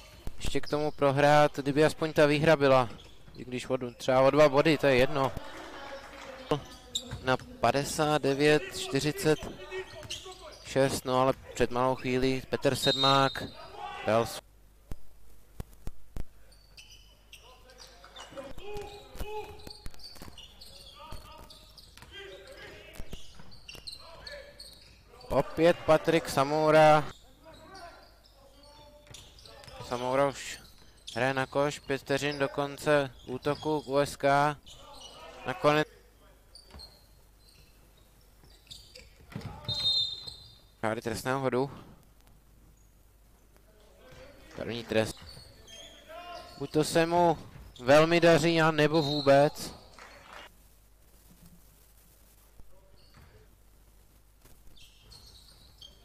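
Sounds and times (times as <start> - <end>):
referee whistle: 12.8 - 13.6, 39.6 - 40.6.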